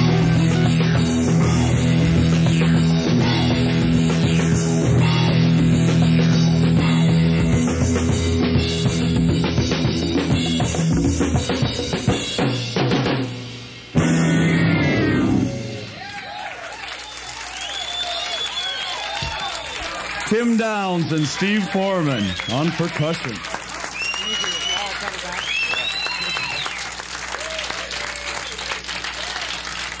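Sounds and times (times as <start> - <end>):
live rock band playing: 0.0 - 16.1
audience cheering: 15.7 - 30.0.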